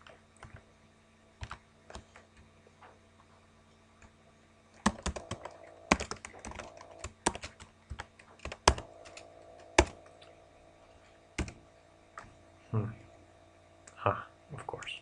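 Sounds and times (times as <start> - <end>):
typing on computer keyboard: 4.8 - 10.0.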